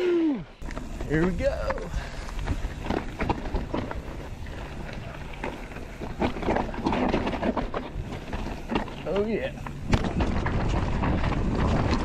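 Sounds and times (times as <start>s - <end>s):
bike rattling: 0.6s - 12.0s
bike tyres rolling over rocks: 0.6s - 12.0s
wind rushing on microphone: 9.5s - 12.0s.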